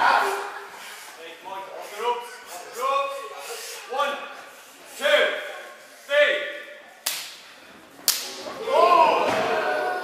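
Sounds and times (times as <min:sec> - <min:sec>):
crowd crying out: 0:08.6 - 0:10.0.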